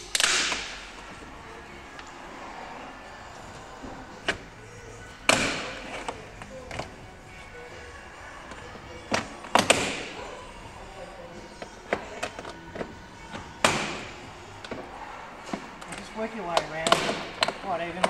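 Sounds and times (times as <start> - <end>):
plastic clips popping loose: 0.0 - 0.8.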